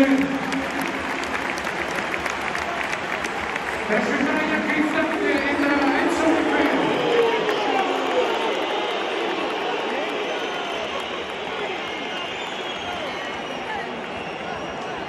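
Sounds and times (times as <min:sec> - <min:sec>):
stadium crowd voices: 0:00.0 - 0:15.0.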